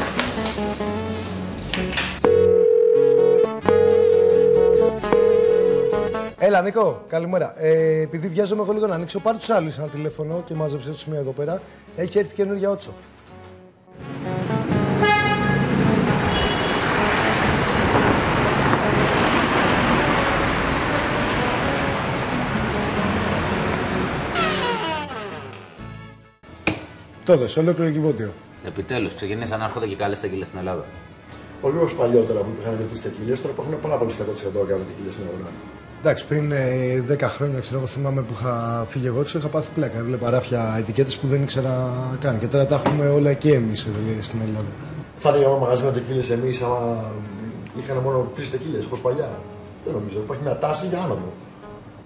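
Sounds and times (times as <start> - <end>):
city street traffic: 0.0 - 2.6, 3.5 - 6.2, 13.0 - 25.0, 29.2 - 49.9
background music: 0.0 - 44.0, 45.0 - 52.0
telephone ringback tone: 2.2 - 6.4
car horn tooting: 14.9 - 17.2.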